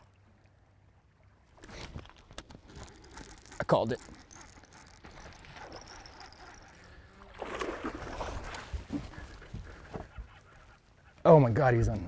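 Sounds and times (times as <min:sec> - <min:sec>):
water splashing: 0:01.6 - 0:10.3.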